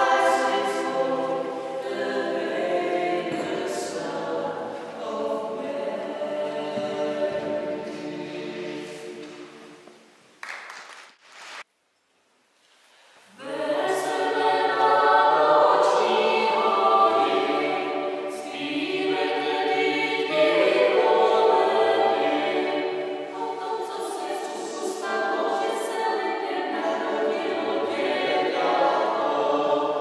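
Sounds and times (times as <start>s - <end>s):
choir singing: 0.0s - 10.0s, 13.3s - 30.0s.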